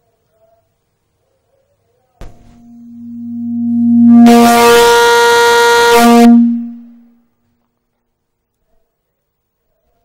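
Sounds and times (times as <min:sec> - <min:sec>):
harsh distorted buzz: 0:02.2 - 0:07.2
low electronic tone: 0:02.6 - 0:07.1.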